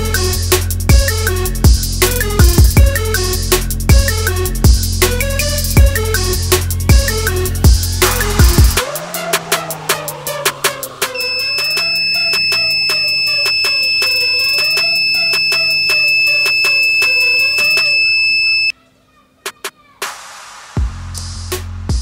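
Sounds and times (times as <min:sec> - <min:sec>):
background music with a beat: 0:00.0 - 0:18.0, 0:19.5 - 0:22.0
high buzzer beep: 0:11.1 - 0:18.7.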